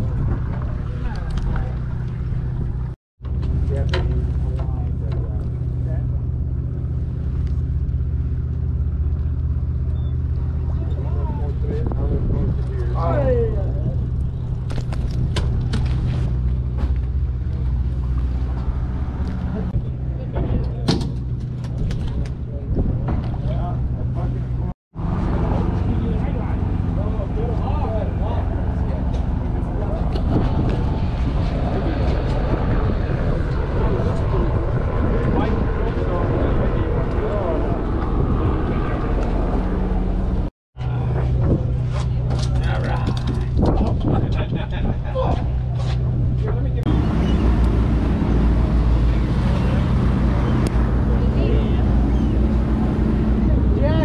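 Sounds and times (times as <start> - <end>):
boat engine humming: 0.0 - 21.8, 22.5 - 43.7, 44.9 - 54.0.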